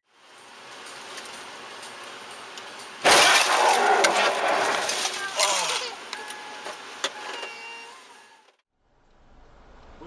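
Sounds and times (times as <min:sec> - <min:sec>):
road and traffic noise: 0:00.0 - 0:10.0
low rumble of traffic: 0:00.1 - 0:10.0.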